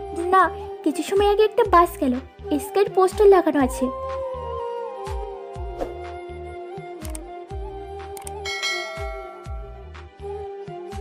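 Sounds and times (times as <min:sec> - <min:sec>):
background music with steady beat: 0:00.0 - 0:11.0
bright bell chime: 0:08.5 - 0:09.8.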